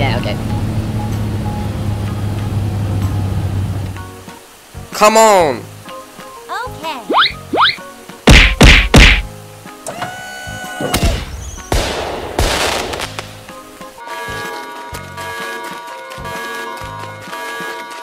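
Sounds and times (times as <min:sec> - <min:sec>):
music: 0:00.0 - 0:18.0
long crackling hiss: 0:03.9 - 0:14.0
rising whistles of rockets: 0:10.9 - 0:13.2
loud firework bangs: 0:11.0 - 0:13.4.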